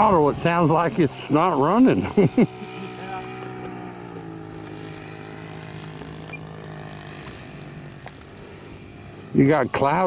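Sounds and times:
model plane engine droning: 0.0 - 10.0.

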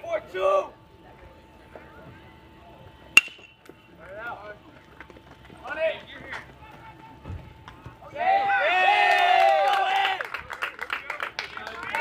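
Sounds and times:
bat hitting ball metallic ping: 3.2 - 3.8.

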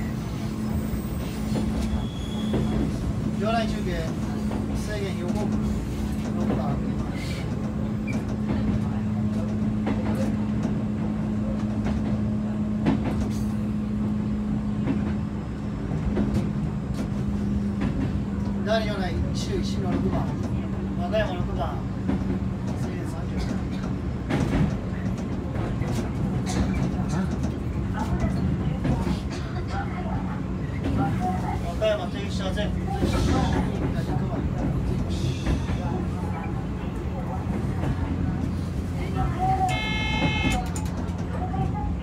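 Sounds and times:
train rumbling: 0.0 - 42.0
electric train humming: 32.6 - 42.0
wheels clicking over rails: 39.6 - 42.0.

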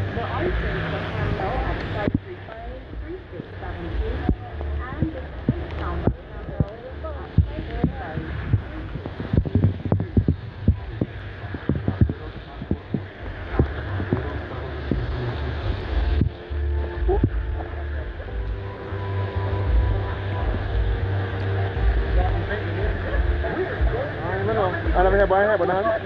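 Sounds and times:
car driving through heavy rain: 0.0 - 26.0
car radio playing music: 0.0 - 26.0.

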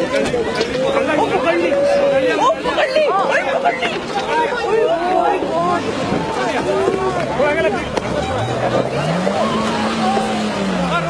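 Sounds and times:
excited voices: 0.0 - 11.0
vehicle engine revving: 5.7 - 11.0.

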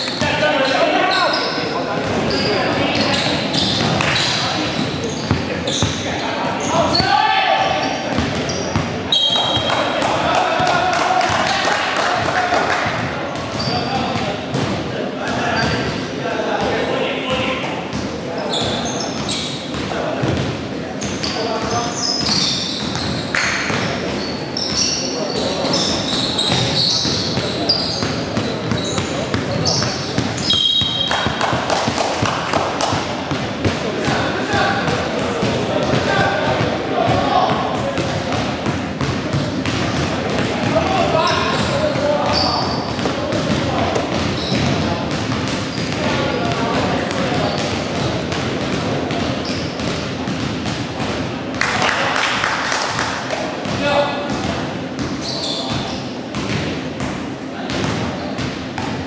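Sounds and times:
shoes squeaking on wooden floor: 0.0 - 9.8, 18.5 - 19.8, 21.0 - 31.5, 40.9 - 43.0, 44.3 - 44.8, 55.1 - 56.2.

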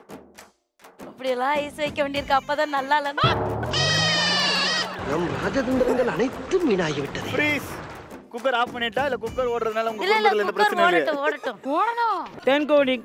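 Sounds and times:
warbling voice: 3.2 - 5.0
musical sound effect: 3.2 - 5.6.

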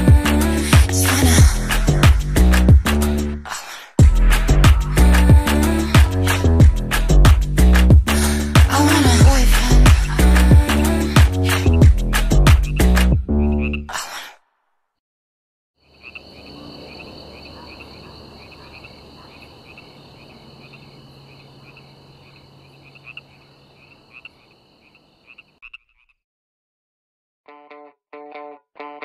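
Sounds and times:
song: 0.0 - 3.4, 4.0 - 13.0
high pulsing animal calls: 15.9 - 26.0.

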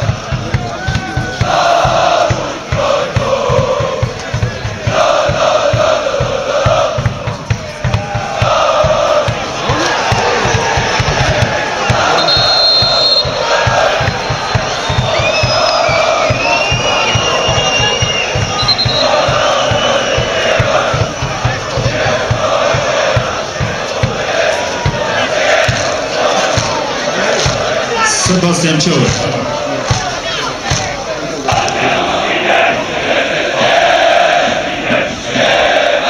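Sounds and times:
crowd chanting in unison: 0.0 - 36.0
high whistles: 11.8 - 20.6.

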